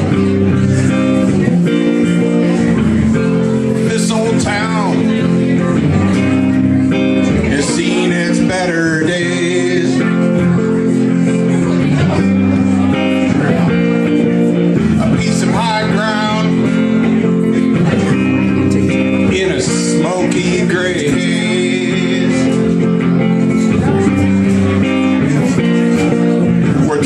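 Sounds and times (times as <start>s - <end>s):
man singing: 0.0s - 27.0s
strummed electric guitar: 0.0s - 27.0s.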